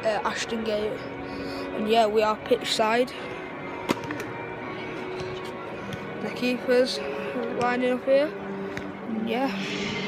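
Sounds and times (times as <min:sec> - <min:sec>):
music over public-address system: 0:01.6 - 0:10.0.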